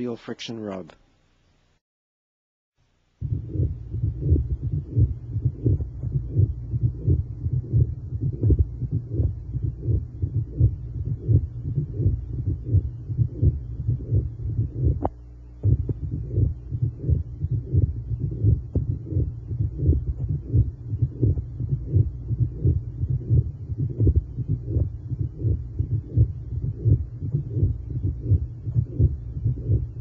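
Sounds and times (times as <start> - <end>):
low hum: 3.1 - 30.0.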